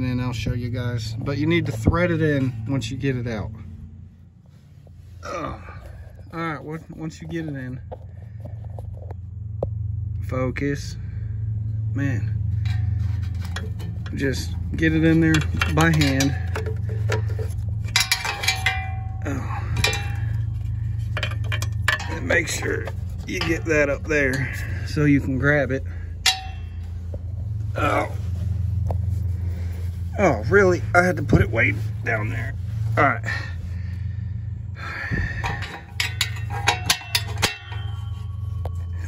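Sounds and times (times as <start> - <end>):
steady low hum: 0.0 - 39.0
small metallic clicks and clinks: 15.2 - 23.7, 35.4 - 39.0.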